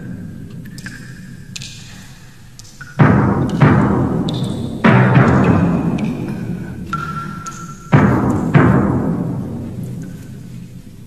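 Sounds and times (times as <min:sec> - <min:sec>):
heavy drum hits: 0:03.0 - 0:10.2.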